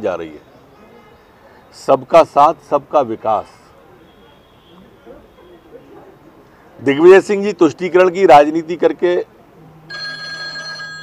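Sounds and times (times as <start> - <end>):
man speaking: 6.8 - 9.3
electronic ringing tone: 9.9 - 11.0.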